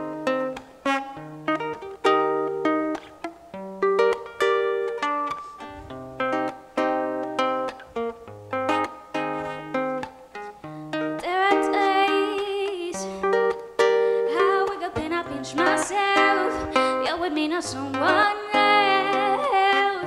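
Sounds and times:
classical guitar plucked chords: 0.0s - 20.0s
woman singing: 11.2s - 20.0s.

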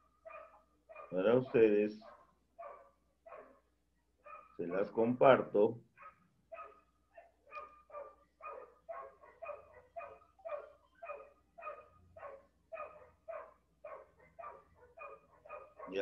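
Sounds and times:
distant dog barking: 0.0s - 5.4s, 6.0s - 16.0s.

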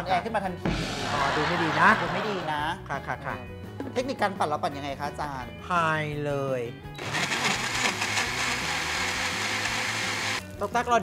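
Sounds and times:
blender running: 7.0s - 10.4s.

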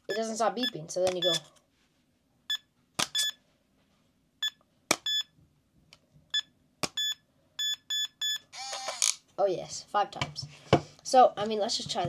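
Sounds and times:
electronic lock beeping: 1.1s - 1.5s, 2.5s - 3.4s, 4.4s - 5.3s, 6.3s - 9.0s.

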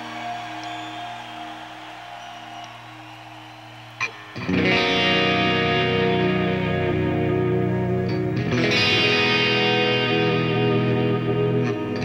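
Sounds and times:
distorted electric guitar: 4.4s - 12.0s.

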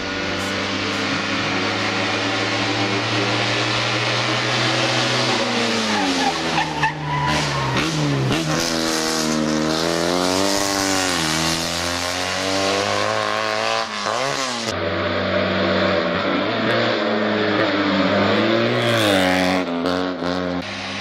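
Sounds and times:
car engine working hard: 0.0s - 21.0s.

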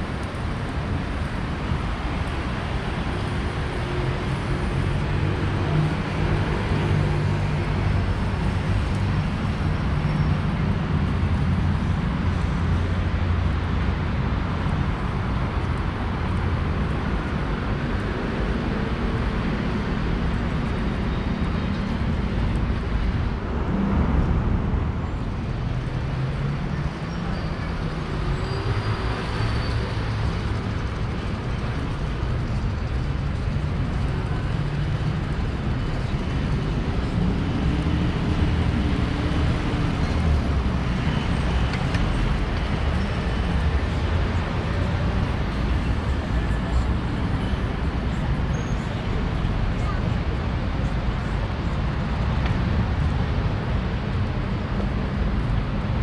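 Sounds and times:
cars and buses passing: 0.0s - 56.0s
road traffic rumble: 0.0s - 56.0s.

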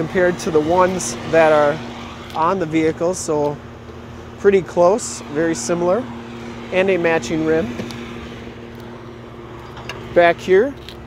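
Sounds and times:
steady mechanical hum: 0.0s - 11.0s.

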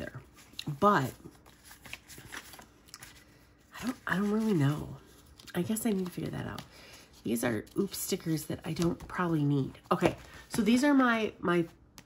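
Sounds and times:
sticker sheets rustling: 0.0s - 10.9s.

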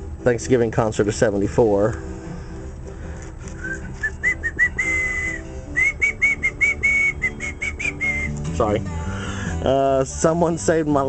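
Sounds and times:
person whistling a tune: 3.6s - 8.4s.

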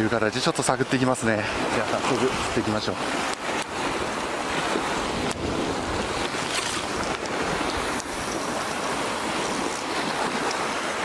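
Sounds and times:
waves breaking on rocky shore: 0.0s - 11.0s
wind on microphone: 1.3s - 11.0s.

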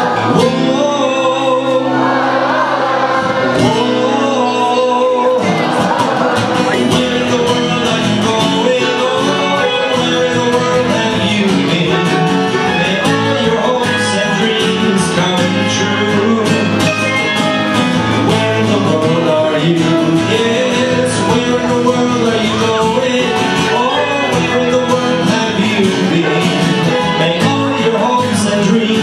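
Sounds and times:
acoustic folk band with guitar: 0.0s - 29.0s.

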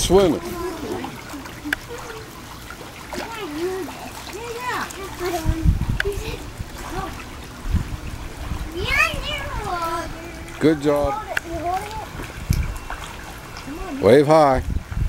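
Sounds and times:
water splashing: 0.0s - 15.0s
children's high calls: 0.4s - 7.4s, 8.5s - 14.0s
dull low thumps: 5.4s - 12.8s.

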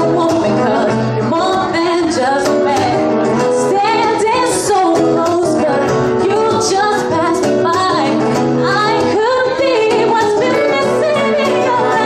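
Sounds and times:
acoustic guitar: 0.0s - 12.0s
violin: 0.0s - 12.0s
woman singing into microphone: 0.0s - 12.0s.

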